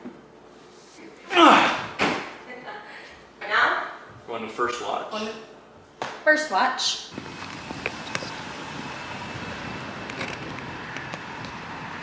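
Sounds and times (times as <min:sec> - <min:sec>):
car driving on road: 0:07.1 - 0:12.0.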